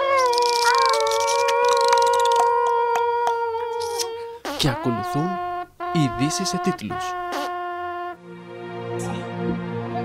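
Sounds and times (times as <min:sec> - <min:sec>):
dog-like howl: 0:00.0 - 0:03.9.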